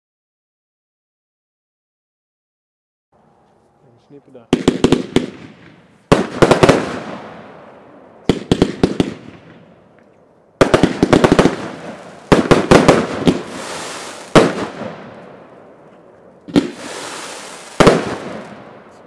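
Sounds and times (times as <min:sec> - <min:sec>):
firework bangs: 0:04.3 - 0:10.0, 0:10.6 - 0:19.0
firework hiss: 0:10.6 - 0:15.2, 0:16.5 - 0:19.0.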